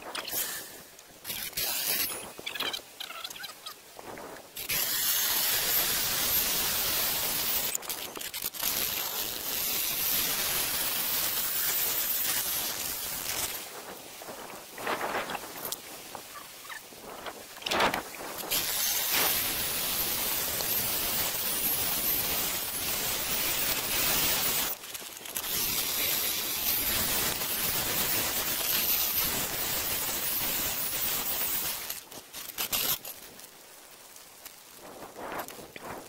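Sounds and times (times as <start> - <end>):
core drill grinding into stone: 4.6 - 13.6, 18.4 - 33.2.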